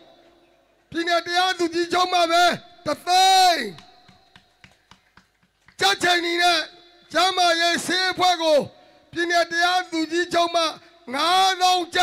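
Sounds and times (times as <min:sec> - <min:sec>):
man's loud voice: 0:00.0 - 0:04.2, 0:05.8 - 0:12.0.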